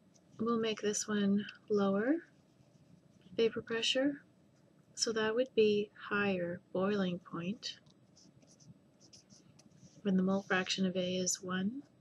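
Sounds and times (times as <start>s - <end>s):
marker writing on paper: 8.2s - 10.7s.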